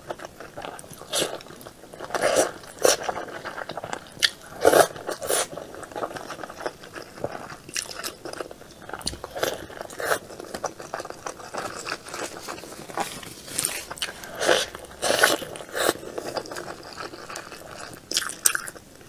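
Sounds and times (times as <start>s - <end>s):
person chewing noodles: 0.0s - 18.8s.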